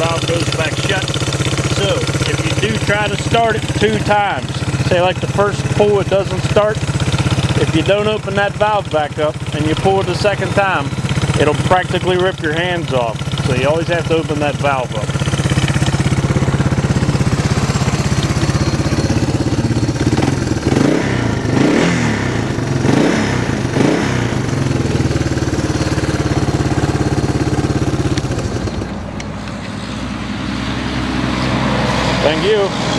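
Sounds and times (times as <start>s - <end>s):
engine idling and revving: 0.0s - 32.9s.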